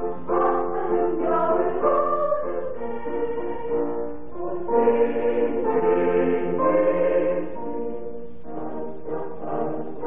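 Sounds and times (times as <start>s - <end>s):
mixed choir singing a waltz: 0.0s - 10.0s.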